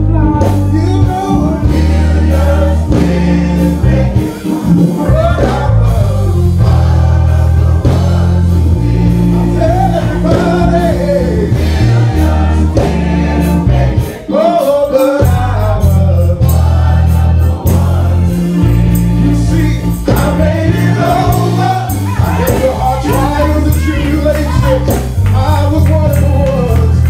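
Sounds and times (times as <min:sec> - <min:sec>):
live band with bass and drums: 0:00.0 - 0:27.0
male vocal group singing: 0:00.0 - 0:27.0.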